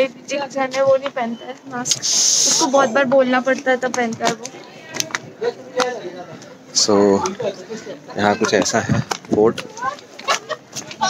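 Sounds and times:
short loud hiss: 1.9s - 2.7s
man talking: 5.8s - 9.7s.

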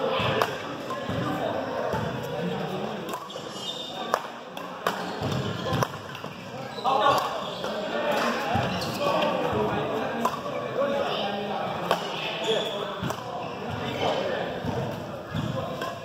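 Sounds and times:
voices echoing in a hall: 0.0s - 16.0s
racket hitting shuttlecock: 0.2s - 1.3s, 3.0s - 6.3s, 7.1s - 7.3s, 10.2s - 10.5s, 11.8s - 12.1s, 13.0s - 13.3s, 15.7s - 16.0s.

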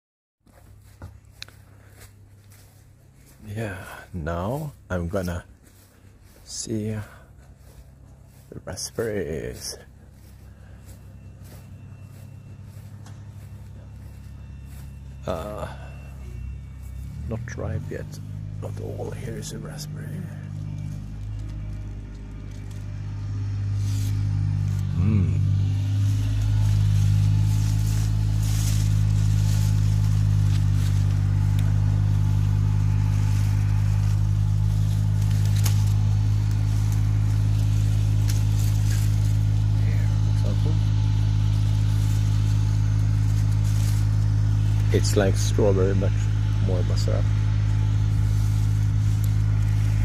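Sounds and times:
low engine hum: 0.4s - 50.0s.

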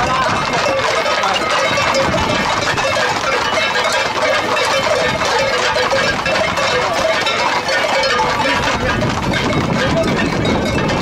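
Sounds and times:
people shouting: 0.0s - 2.0s
horses' hooves on pavement: 0.0s - 11.0s.

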